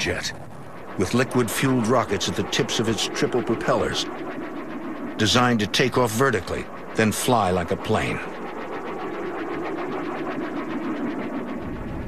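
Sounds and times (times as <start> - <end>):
pulsing jet-like roar: 0.0 - 8.4.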